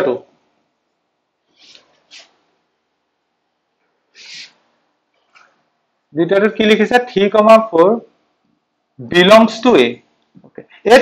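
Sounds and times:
short soft hiss: 1.5 - 2.5.

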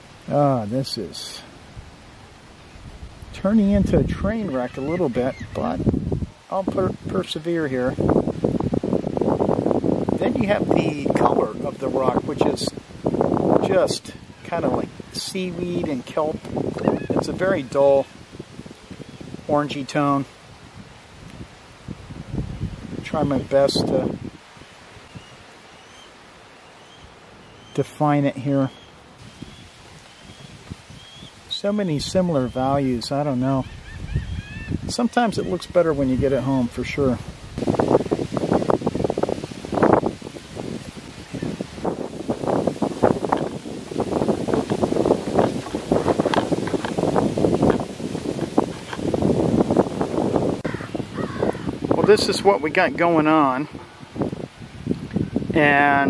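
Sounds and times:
wind through leafy trees: 0.0 - 56.0.

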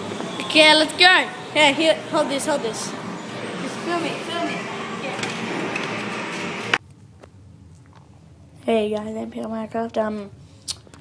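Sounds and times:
busy arcade din: 0.0 - 6.8.

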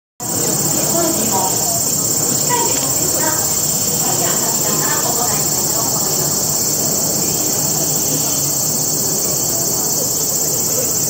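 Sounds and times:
high-pitched insect chorus: 0.2 - 11.0
murmur of crowd voices: 0.2 - 11.0.

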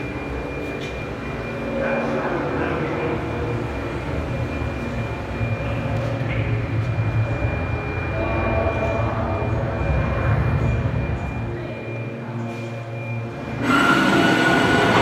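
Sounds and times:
low electronic rumble: 13.4 - 15.0.

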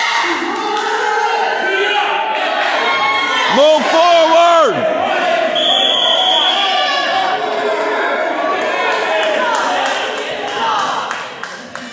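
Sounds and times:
spectators shouting and cheering: 0.0 - 11.9.

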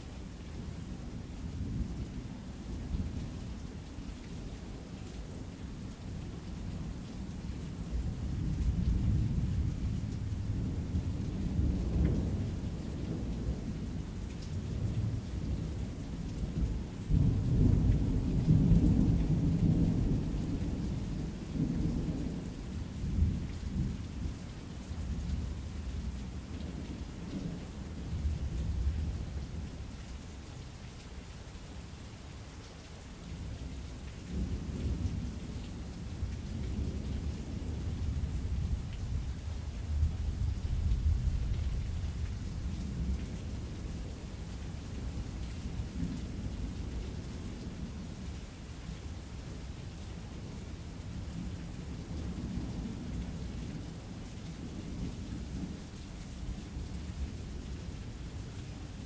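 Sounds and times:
steady rain: 0.0 - 59.0
low rolling thunder: 7.9 - 14.0, 16.5 - 29.4, 34.3 - 48.3.

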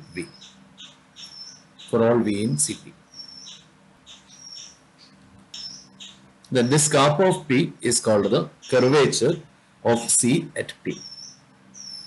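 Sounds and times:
stylus squeaking on tablet screen: 0.2 - 2.0, 3.1 - 7.1, 8.2 - 9.2, 10.9 - 12.0.

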